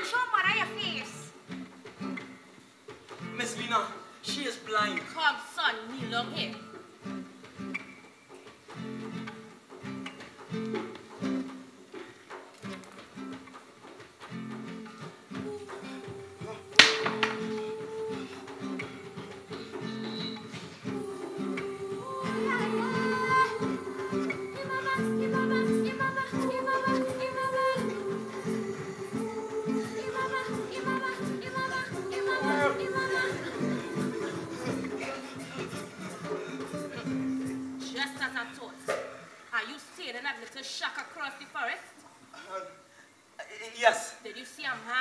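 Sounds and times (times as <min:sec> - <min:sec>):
woman singing: 0:00.0 - 0:01.3, 0:05.9 - 0:06.7, 0:15.3 - 0:38.8
acoustic guitar plucking: 0:00.0 - 0:39.5
sharp crack: 0:16.7 - 0:18.0.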